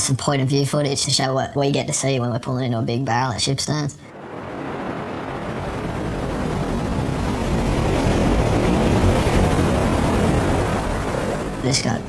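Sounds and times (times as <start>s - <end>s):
wave and whitewash roaring: 0.0s - 12.0s.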